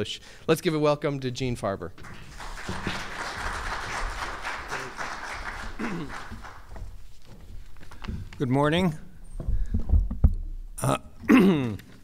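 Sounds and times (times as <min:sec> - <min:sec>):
audience applauding: 0:02.0 - 0:07.0.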